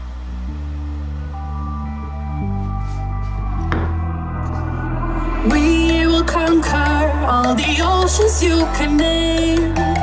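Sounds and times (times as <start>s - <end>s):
sustained music chords: 0.0s - 10.0s.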